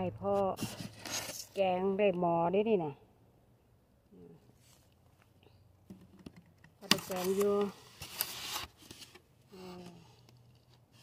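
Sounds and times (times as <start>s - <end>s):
woman speaking: 0.0s - 0.6s, 1.6s - 3.1s, 6.8s - 7.8s.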